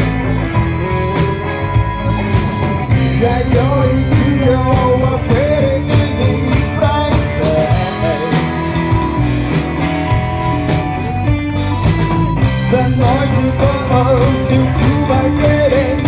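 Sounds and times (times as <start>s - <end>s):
bass guitar: 0.0s - 16.0s
drums: 0.0s - 16.0s
electric guitar: 0.0s - 16.0s
keyboard: 0.0s - 16.0s
male vocalist singing: 3.0s - 8.9s, 12.6s - 16.0s.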